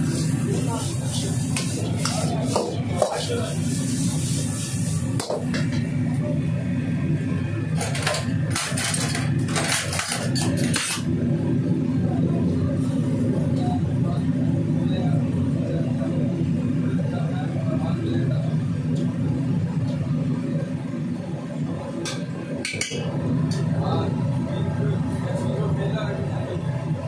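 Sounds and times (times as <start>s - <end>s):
wok range roaring: 0.0s - 27.0s.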